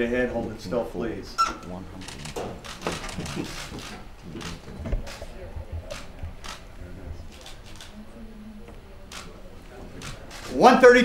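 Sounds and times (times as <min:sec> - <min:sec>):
murmur of voices: 0:00.0 - 0:11.0
camera shutters clicking: 0:02.0 - 0:06.7, 0:07.3 - 0:08.0, 0:09.1 - 0:09.4, 0:10.0 - 0:10.7.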